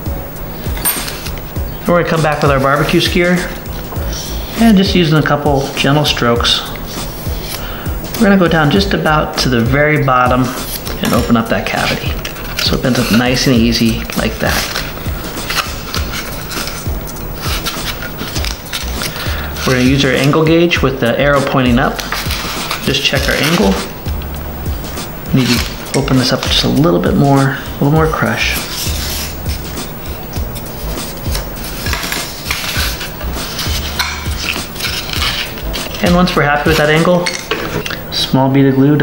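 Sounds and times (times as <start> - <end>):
background music: 0.0 - 39.0
fingers rubbing on foam: 2.2 - 8.8, 10.3 - 20.5, 21.8 - 26.9, 28.1 - 37.1
foam board creaking and crackling: 10.2 - 38.0.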